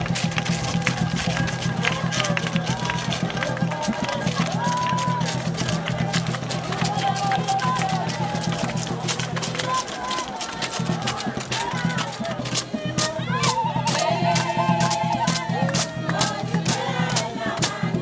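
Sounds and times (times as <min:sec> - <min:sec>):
crowd clapping along: 0:00.0 - 0:18.0.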